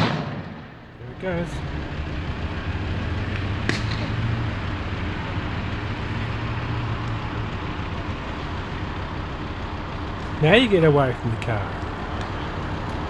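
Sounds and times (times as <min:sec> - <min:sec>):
sharp crack: 0:00.0 - 0:01.0, 0:03.2 - 0:04.4
car engine idling: 0:00.4 - 0:13.0.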